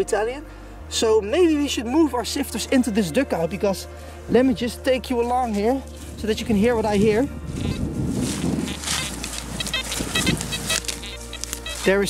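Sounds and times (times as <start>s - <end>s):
metal detector beeping: 7.5s - 12.0s.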